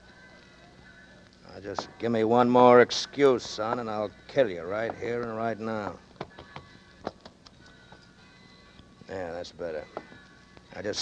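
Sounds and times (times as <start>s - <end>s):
faint music underscore tones: 0.0s - 11.0s.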